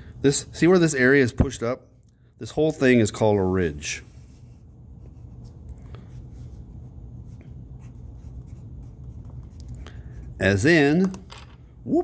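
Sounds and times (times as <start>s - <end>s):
pencil scratching on paper: 4.5s - 10.4s.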